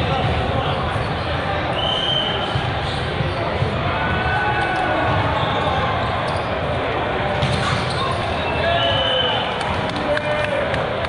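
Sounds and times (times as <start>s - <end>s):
murmur of many voices: 0.0s - 11.0s
referee's whistle: 1.7s - 3.0s, 7.9s - 9.6s
volleyballs struck and bouncing: 7.3s - 8.3s.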